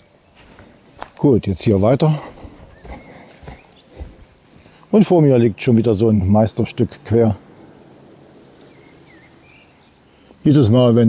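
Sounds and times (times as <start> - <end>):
footsteps on dirt path: 0.0 - 5.9.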